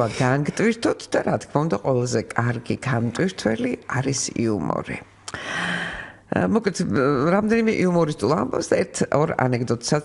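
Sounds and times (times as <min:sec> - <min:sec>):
person speaking: 0:00.0 - 0:10.0
person sighing: 0:05.3 - 0:06.3.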